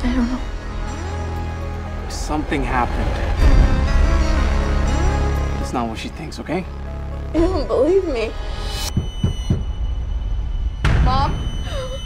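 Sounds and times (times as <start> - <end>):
low rumble: 0.0 - 12.0
low thumps dropping in pitch: 6.8 - 12.0
sharp hit: 7.4 - 12.0.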